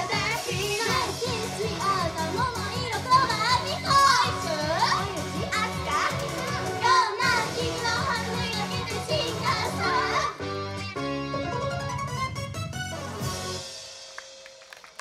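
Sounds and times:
young women singing: 0.0s - 10.3s.

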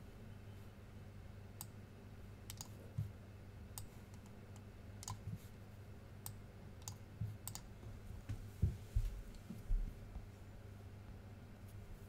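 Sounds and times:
low steady hum: 0.0s - 12.0s
faint mouse clicks: 2.5s - 2.8s, 3.8s - 5.4s, 6.2s - 7.7s.

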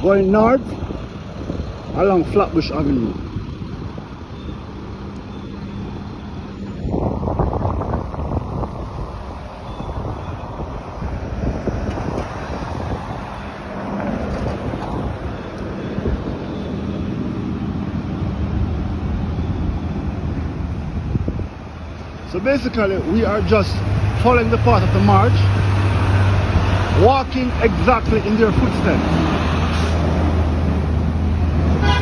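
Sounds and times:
road traffic passing: 0.0s - 32.0s
wind rumbling on microphone: 0.0s - 32.0s.

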